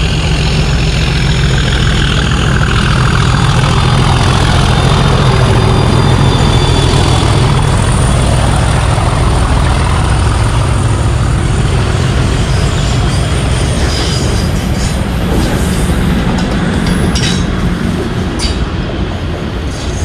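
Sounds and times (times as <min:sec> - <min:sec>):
diesel locomotive engine drone: 0:00.0 - 0:20.0
wheels rumbling on rails: 0:00.0 - 0:20.0
faint wheel squeal: 0:04.4 - 0:08.4.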